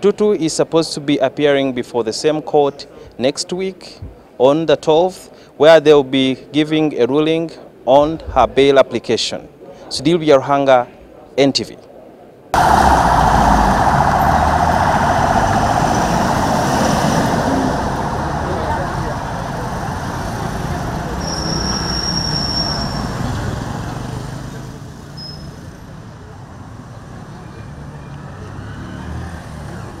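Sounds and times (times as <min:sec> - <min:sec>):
background voices: 0:12.6 - 0:21.7
van driving past: 0:12.6 - 0:25.1.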